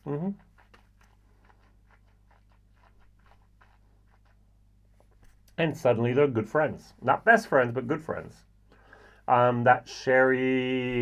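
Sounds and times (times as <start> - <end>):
mouth and lip sounds: 0.0 - 5.6
low room hum: 0.0 - 11.0.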